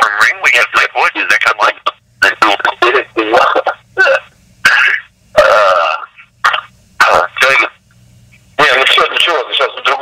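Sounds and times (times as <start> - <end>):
person talking over telephone: 0.0 - 7.8, 8.6 - 10.0.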